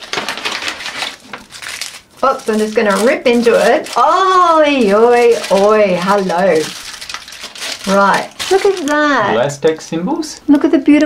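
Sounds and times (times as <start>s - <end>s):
foil and paper packaging crinkling: 0.0s - 9.4s.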